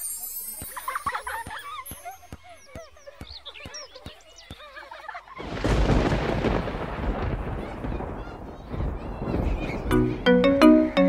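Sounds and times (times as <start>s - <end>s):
thunder rumble: 5.4s - 10.4s.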